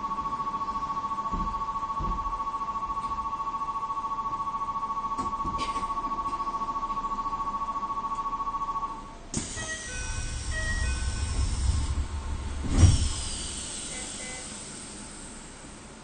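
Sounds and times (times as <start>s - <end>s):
electronic departure bell buzzing: 7.0s - 12.4s
train doors closing thump: 9.4s - 14.2s
hiss: 9.4s - 15.7s
low rumble: 9.6s - 13.8s.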